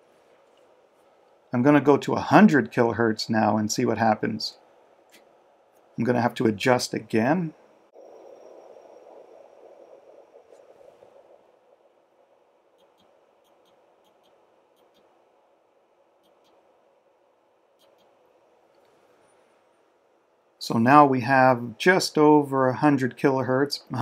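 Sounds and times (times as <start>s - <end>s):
soft rustle: 0.0s - 1.5s.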